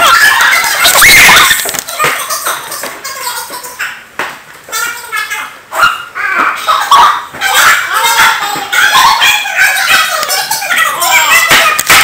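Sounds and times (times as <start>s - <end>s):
young people squealing and talking: 0.0s - 4.0s, 4.7s - 12.0s.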